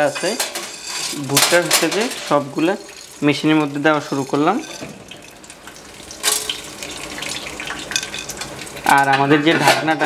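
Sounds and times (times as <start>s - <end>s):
oil sizzling with crackles: 0.0s - 10.0s.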